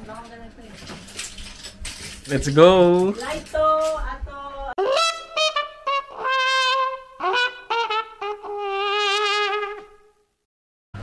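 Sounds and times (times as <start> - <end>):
trumpet tune: 4.8 - 10.3.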